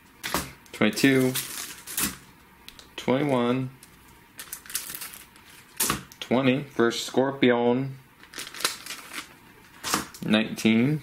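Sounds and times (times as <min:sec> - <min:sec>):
plastic bags crinkling: 0:01.0 - 0:02.3, 0:04.4 - 0:05.9, 0:08.2 - 0:10.2.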